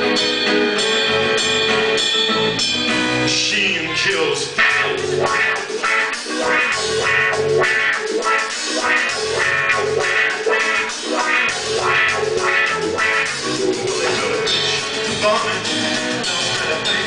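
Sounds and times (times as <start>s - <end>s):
drum kit beat: 4.4s - 17.0s
strummed acoustic guitar: 4.6s - 17.0s.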